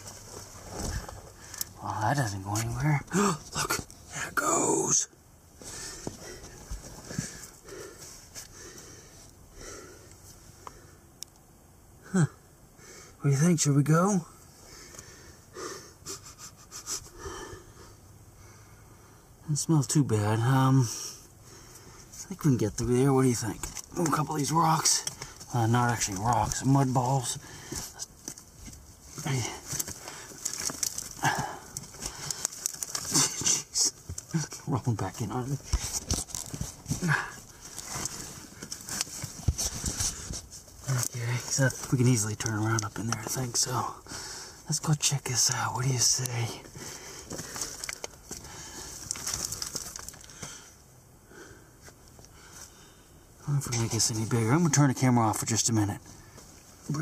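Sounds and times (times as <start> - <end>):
scuffing against rock and soil: 0.0 - 4.2, 23.3 - 43.4, 46.2 - 50.6
person breathing hard: 5.6 - 11.1, 14.6 - 19.4, 20.9 - 22.1, 27.4 - 28.0, 31.2 - 32.6, 44.0 - 44.6, 46.7 - 49.2, 50.2 - 53.3.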